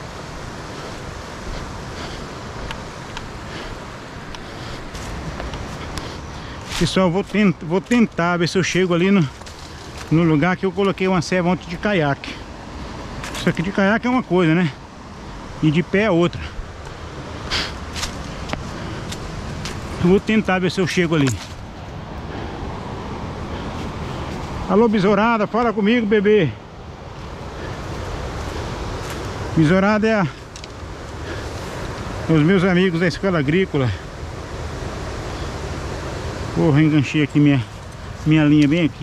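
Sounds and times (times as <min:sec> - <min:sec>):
river rushing over rapids: 0:00.0 - 0:39.0
footsteps on dry leaves: 0:04.4 - 0:11.0, 0:16.8 - 0:22.2, 0:27.2 - 0:29.5.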